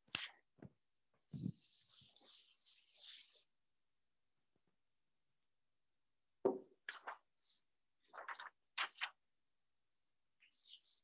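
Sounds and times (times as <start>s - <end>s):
eraser rubbing on chalkboard: 1.4s - 3.5s.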